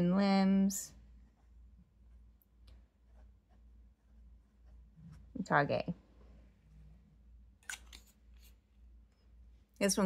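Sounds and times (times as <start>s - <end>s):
low room hum: 0.0s - 10.0s
handling noise on desk: 7.6s - 8.6s.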